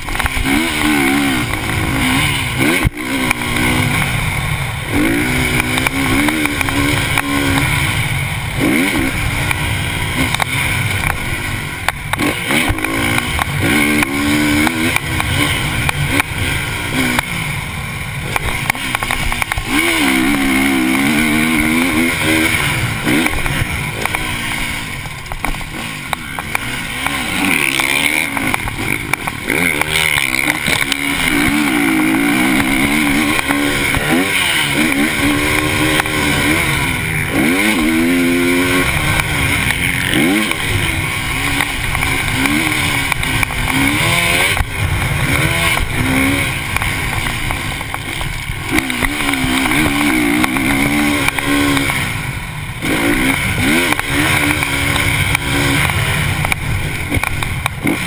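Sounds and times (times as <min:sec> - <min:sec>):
motocross bike engine revving: 0:00.0 - 0:58.0.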